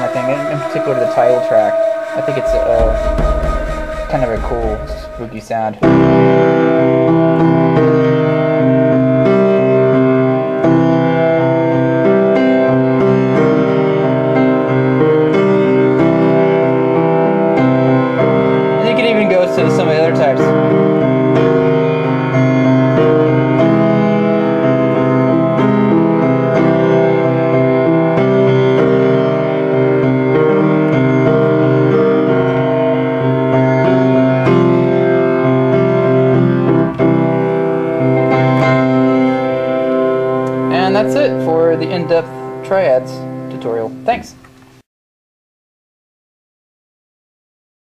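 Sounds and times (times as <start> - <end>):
keyboard playing held chords: 0.0 - 44.3.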